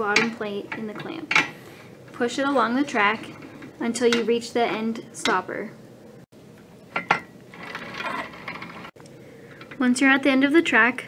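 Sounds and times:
clamp sliding on metal track: 0:07.5 - 0:09.0.

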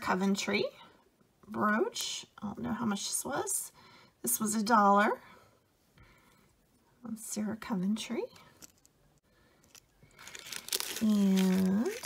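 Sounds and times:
plastic bag crinkling: 0:09.6 - 0:12.0.

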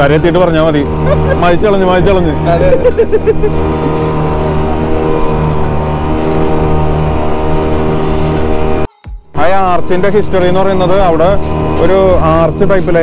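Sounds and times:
boat engine droning: 0:00.0 - 0:13.0.

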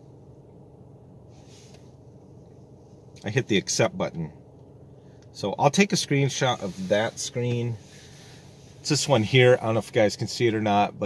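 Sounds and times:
car interior hum: 0:00.0 - 0:11.0
faint breath-like hiss: 0:01.3 - 0:02.1, 0:06.3 - 0:09.6.

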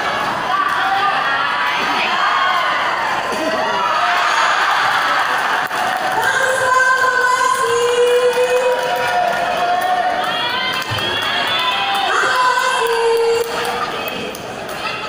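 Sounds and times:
crowd cheering and shouting: 0:00.0 - 0:15.0.

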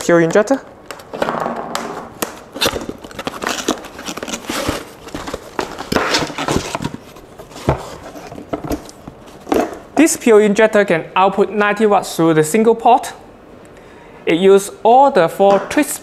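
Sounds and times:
cardboard scraping and rustling: 0:02.6 - 0:09.8.

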